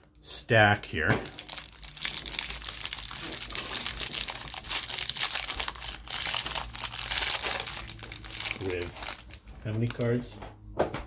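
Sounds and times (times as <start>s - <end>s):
plastic wrap crinkling and tearing: 1.2s - 10.2s.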